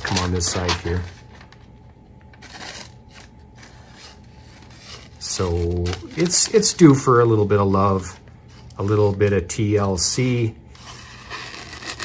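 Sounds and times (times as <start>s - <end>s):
knife blade slicing paper: 2.4s - 6.7s, 10.8s - 12.0s.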